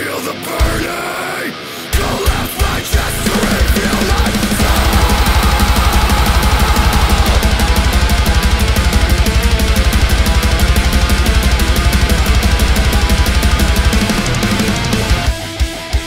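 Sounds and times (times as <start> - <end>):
distorted electric guitar riffing: 0.0 - 16.0
bass: 0.6 - 1.0, 2.0 - 16.0
fast kick drum: 3.5 - 15.4.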